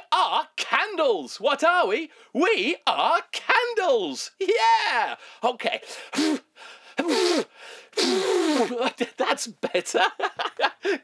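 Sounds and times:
man gasping: 2.1s - 2.4s, 5.2s - 8.7s, 10.8s - 11.0s.

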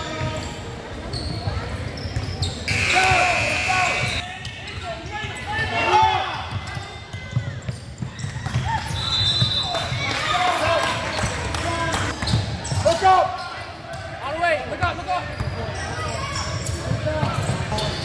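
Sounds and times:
sneaker squeaks: 0.0s - 5.7s, 6.4s - 10.0s, 12.1s - 13.6s, 14.9s - 18.0s.

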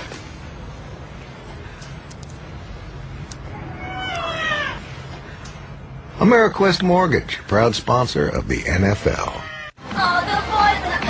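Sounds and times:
cat meowing: 3.5s - 4.9s, 9.3s - 9.8s.

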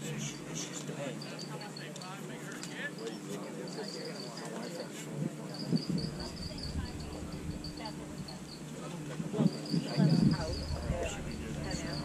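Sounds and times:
faint distant voices: 0.0s - 12.0s
insects chirping trills: 0.0s - 12.0s.

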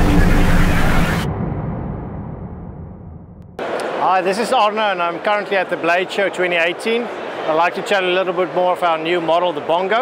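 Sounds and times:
low boom sound effect: 0.0s - 3.6s
busy hall background: 3.5s - 10.0s.

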